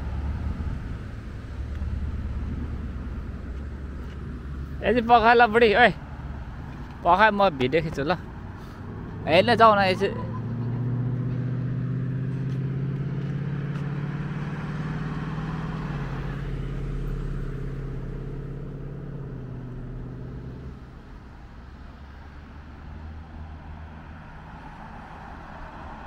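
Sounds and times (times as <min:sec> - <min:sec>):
car driving past: 0:00.0 - 0:26.0.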